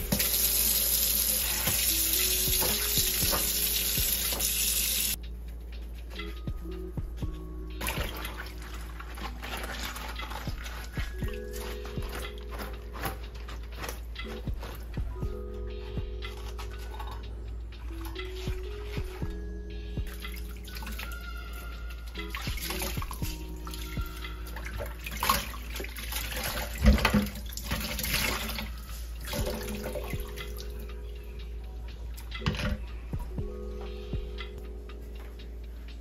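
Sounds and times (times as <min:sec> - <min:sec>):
water splashing in steel sink: 0:00.0 - 0:05.2, 0:07.8 - 0:13.2, 0:23.8 - 0:30.5
soft instrumental music: 0:00.0 - 0:36.0.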